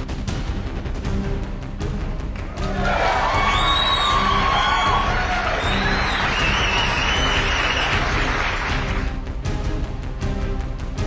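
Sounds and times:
audience applauding and cheering: 2.3 - 9.2.

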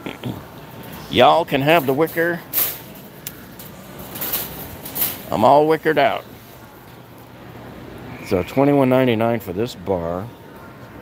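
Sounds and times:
store background noise: 0.0 - 11.0
shopping cart rattling: 0.6 - 6.6.

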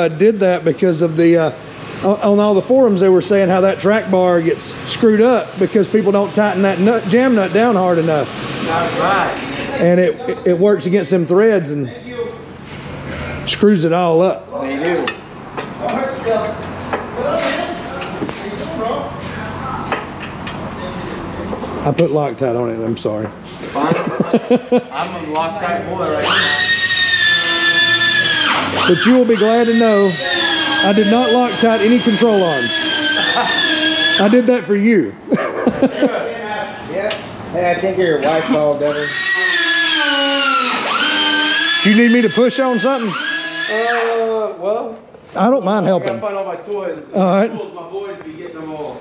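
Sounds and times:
person laughing: 23.7 - 25.0, 33.1 - 33.8, 35.3 - 36.3
power tool motor whining: 26.1 - 34.7, 38.3 - 44.3.

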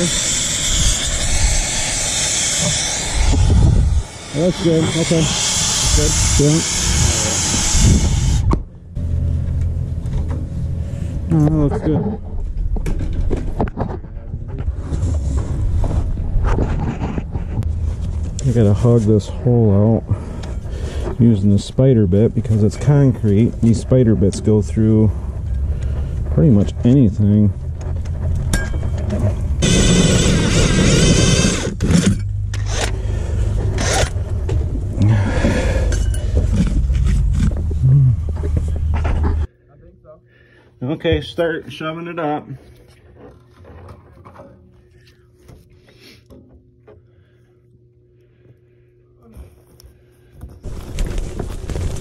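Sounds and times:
brazing torch flame hissing: 0.0 - 8.5
drill motor whine with grinding: 0.0 - 8.5, 29.6 - 34.2.

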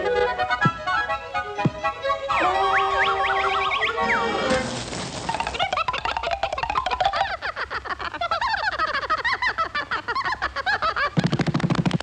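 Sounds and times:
cartoon animal calls: 2.3 - 4.6.

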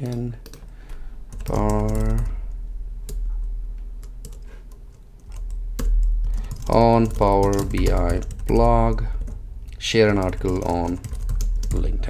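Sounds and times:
keyboard typing: 0.0 - 3.3, 4.0 - 12.0.

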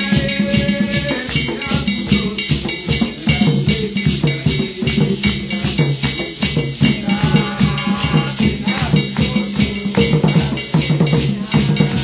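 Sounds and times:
hand drums fast rhythm: 0.0 - 12.0
metallic hand percussion: 0.0 - 12.0.

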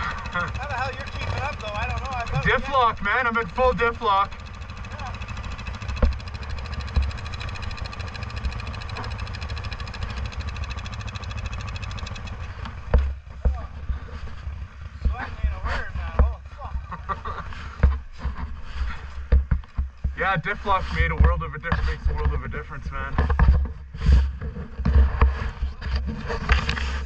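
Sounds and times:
quad bike engine running: 0.0 - 27.0
knocks and low thumps: 5.6 - 9.5, 11.7 - 18.6, 19.2 - 22.5.

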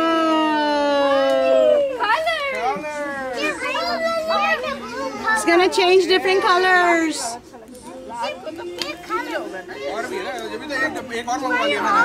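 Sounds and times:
children whooping and yelling: 0.0 - 5.4
children shouting together: 0.0 - 5.6, 9.9 - 12.0.

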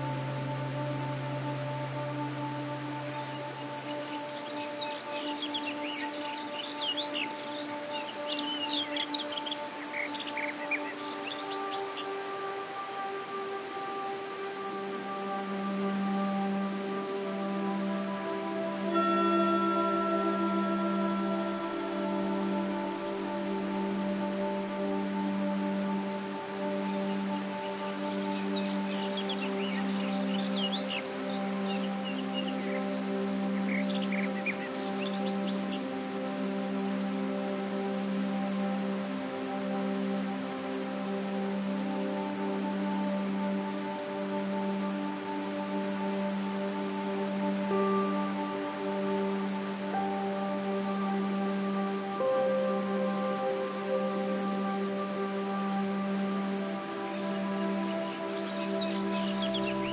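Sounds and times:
birds chirping: 0.0 - 40.2, 55.2 - 59.9
slow ambient music: 0.0 - 59.9.

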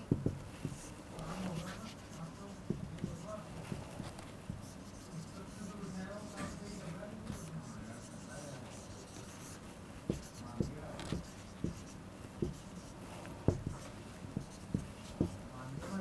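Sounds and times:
marker on whiteboard: 0.0 - 16.0.

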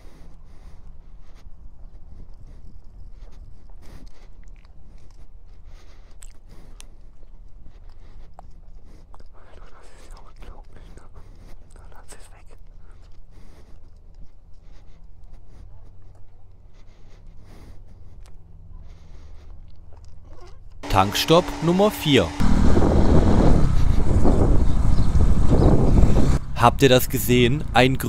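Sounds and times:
motorcycle engine humming: 20.8 - 28.0.

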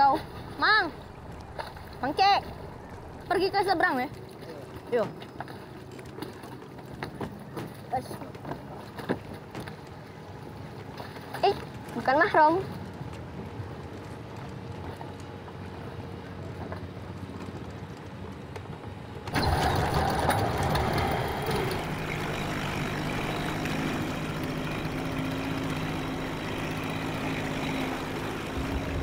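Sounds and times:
boat engine droning: 0.0 - 29.0
waterside background noise: 0.0 - 29.0.

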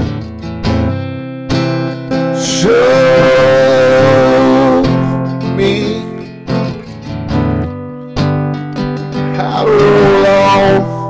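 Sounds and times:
strummed acoustic guitar: 0.0 - 11.0
man singing a long wordless note: 2.4 - 6.3, 9.3 - 11.0.

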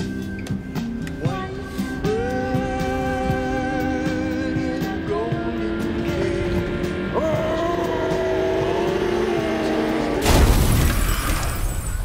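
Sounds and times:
car engine revving high: 5.4 - 10.3.

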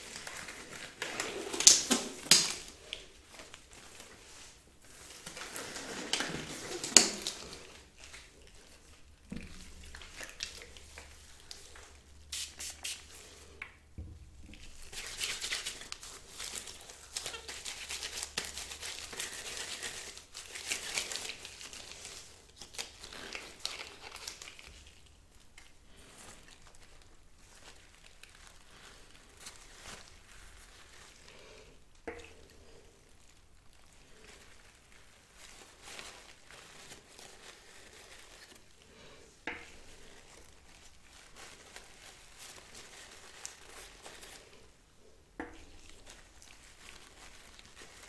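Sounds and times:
paper tissue crinkling and rustling: 0.0 - 48.0.

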